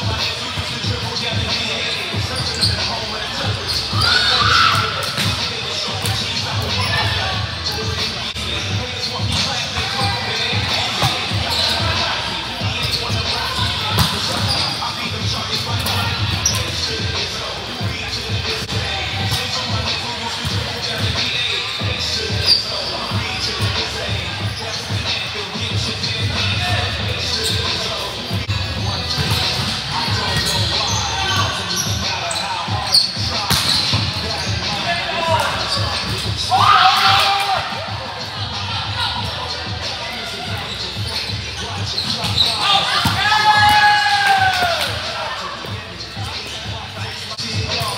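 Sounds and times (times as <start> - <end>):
hubbub of players' voices: 0.0 - 47.9
sneakers squeaking: 0.0 - 47.9
volleyballs hit and bouncing: 33.3 - 37.6.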